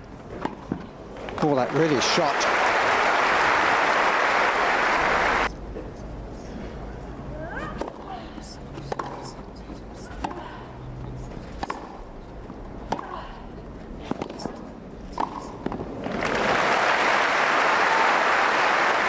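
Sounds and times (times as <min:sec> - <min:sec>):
crowd applause: 0:01.4 - 0:05.5, 0:16.0 - 0:19.0
racket hitting tennis ball: 0:11.6 - 0:12.1, 0:12.8 - 0:13.1, 0:14.0 - 0:16.4.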